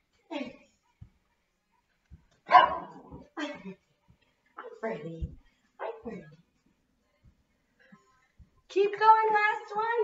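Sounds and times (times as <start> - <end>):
small dog barking: 2.5 - 3.1.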